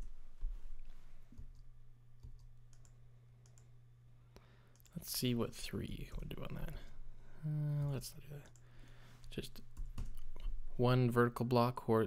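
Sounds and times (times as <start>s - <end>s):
low steady hum: 0.0s - 12.0s
computer mouse clicks: 1.3s - 3.7s.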